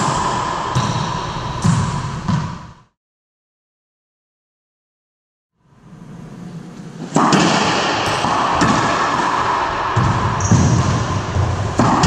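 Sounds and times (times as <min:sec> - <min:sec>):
racquetball strikes echoing: 0:00.0 - 0:02.9, 0:07.0 - 0:12.0.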